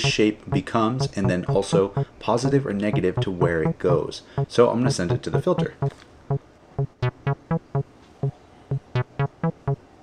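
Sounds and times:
acid synth bassline: 0.0 - 3.8, 4.4 - 5.9, 6.8 - 7.8, 8.7 - 9.8.

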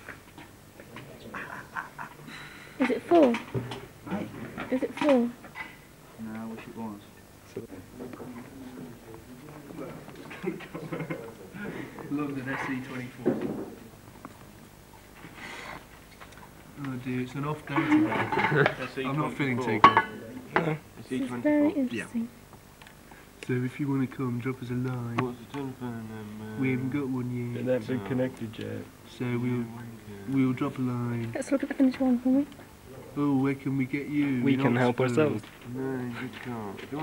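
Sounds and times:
indistinct conversation: 0.6 - 37.0.

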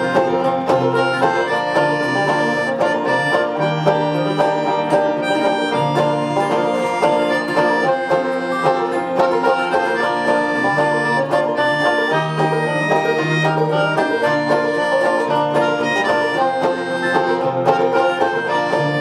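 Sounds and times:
banjo picking: 0.0 - 19.0
melodica sustained notes: 0.0 - 19.0
resonator guitar picking: 0.0 - 19.0.

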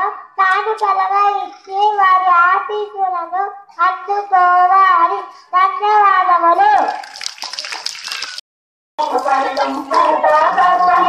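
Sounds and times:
person singing with music: 9.0 - 11.0.

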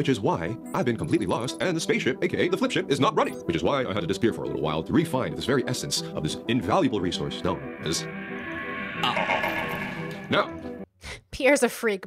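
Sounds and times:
background music: 0.0 - 10.8.

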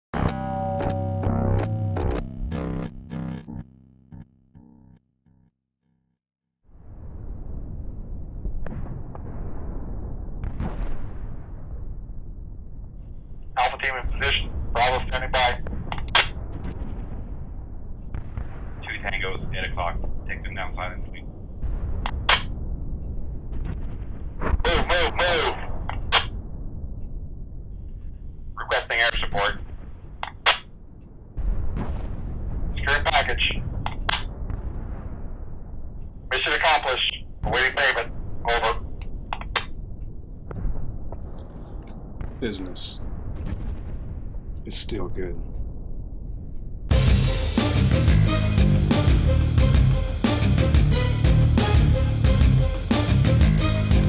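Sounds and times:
bass guitar: 0.2 - 3.6, 46.9 - 54.0
distorted electric guitar chords: 0.2 - 5.0, 46.9 - 54.0
deep rumbling boom: 6.7 - 28.0, 30.8 - 36.3, 37.3 - 54.0.

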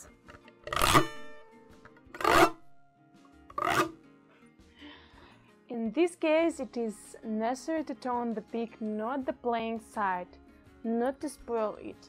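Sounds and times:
pick scraping along metal frets: 0.6 - 2.7, 3.5 - 4.0.

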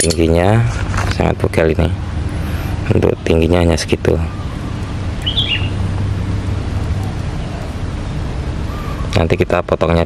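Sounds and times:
steady low rumble: 0.0 - 10.0
bird chirping: 2.4 - 9.5.

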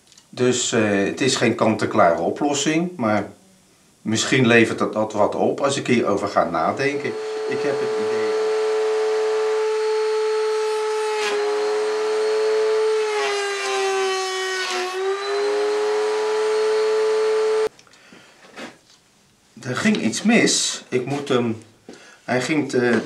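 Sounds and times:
electric router whining: 6.8 - 17.7
router cutting wood: 6.8 - 17.7.

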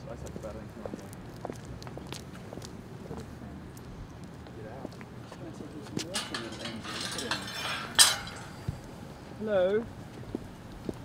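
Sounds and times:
sharp clink: 6.2 - 8.8.

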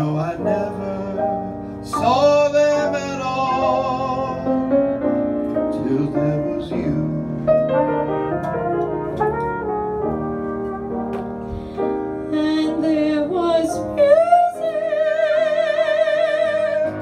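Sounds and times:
piano chords: 0.0 - 17.0
trumpet melody: 0.0 - 17.0.

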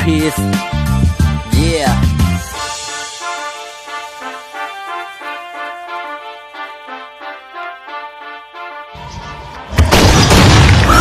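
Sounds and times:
very loud crash: 9.7 - 11.0.

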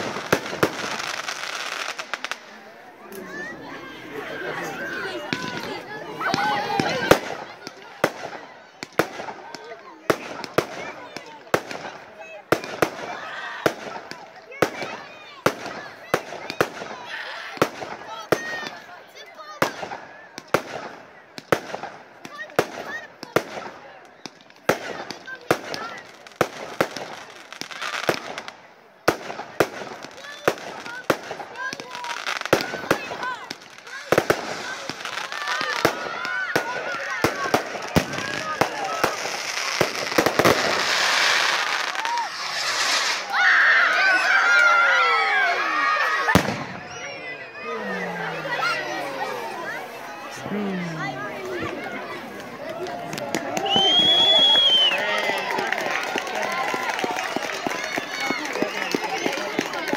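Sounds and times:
fireworks bangs: 0.0 - 59.9
people's voices: 0.0 - 59.9.

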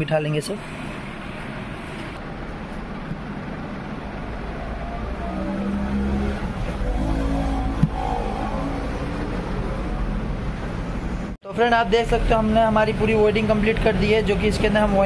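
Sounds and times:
road traffic rumble: 0.6 - 15.0.

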